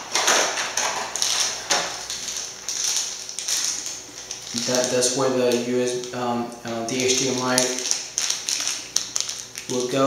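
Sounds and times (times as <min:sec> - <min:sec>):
plastic packaging crinkling: 0:00.0 - 0:10.0.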